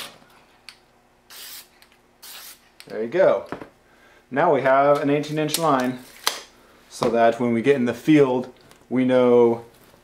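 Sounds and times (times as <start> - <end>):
spray paint can hissing: 1.3 - 2.6.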